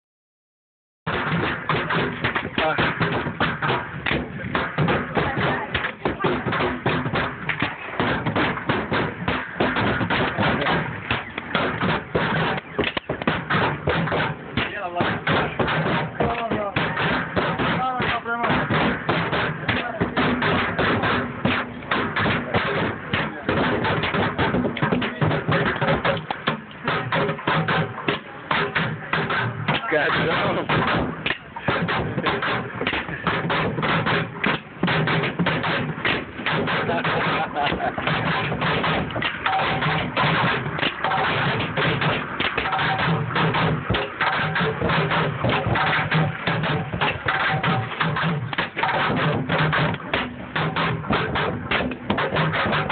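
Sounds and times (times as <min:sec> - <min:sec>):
drumming on plastic bins: 0:01.1 - 0:52.9.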